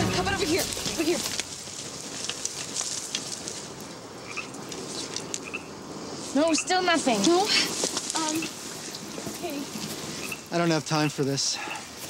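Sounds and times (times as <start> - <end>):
crackling rustle with clicks: 0.3 - 11.2.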